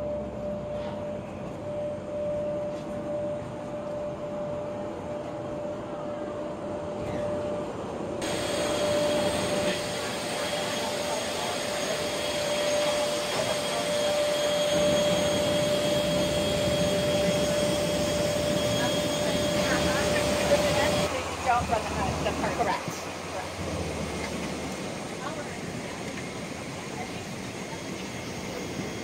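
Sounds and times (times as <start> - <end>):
jet airliner engine drone and whine: 0.0 - 29.0.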